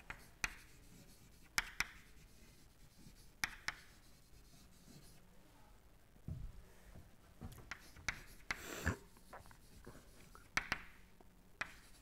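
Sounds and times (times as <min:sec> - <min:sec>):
chalk writing on chalkboard: 0:00.0 - 0:05.2, 0:07.7 - 0:10.9, 0:11.6 - 0:12.0.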